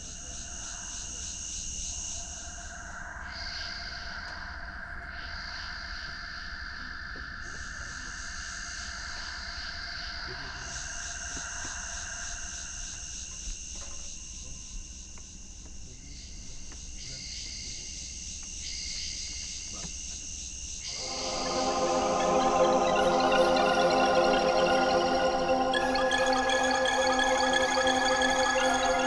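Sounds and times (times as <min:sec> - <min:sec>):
insects chirping: 0:00.0 - 0:29.0.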